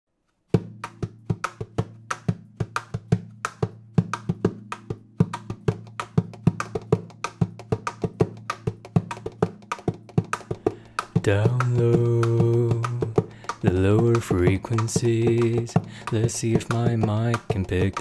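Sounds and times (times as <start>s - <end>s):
percussive taps on guitar body: 0.6s - 18.0s.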